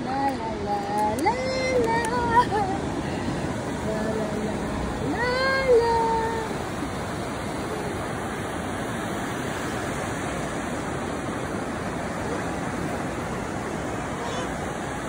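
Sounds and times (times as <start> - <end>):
surf breaking on beach: 0.0 - 15.0.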